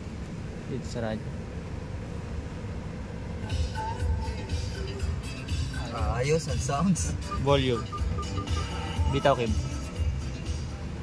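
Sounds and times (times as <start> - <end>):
music from car speakers: 3.4 - 11.0.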